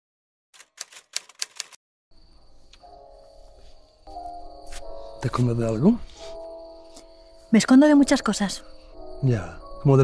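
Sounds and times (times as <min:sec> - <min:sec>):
typewriter keys clacking: 0:00.6 - 0:01.8.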